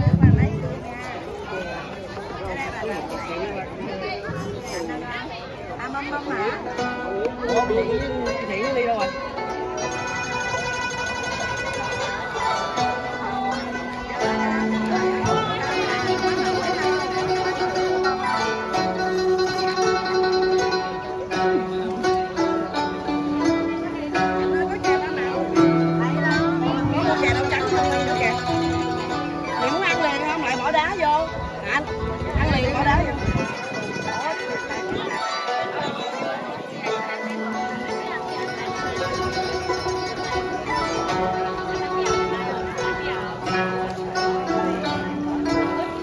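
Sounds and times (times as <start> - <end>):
zithers playing a melody: 0.0 - 46.0.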